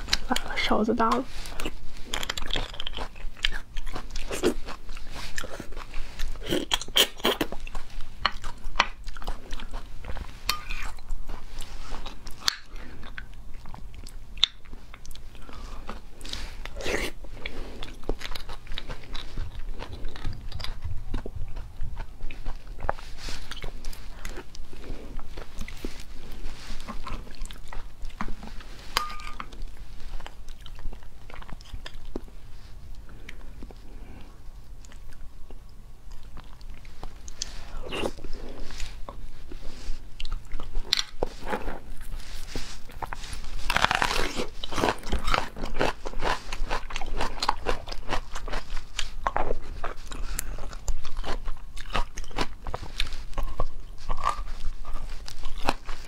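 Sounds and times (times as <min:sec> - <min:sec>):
wet chewing and mouth smacks: 0:01.2 - 0:56.0
metal spoon scraping bone: 0:28.9 - 0:29.5.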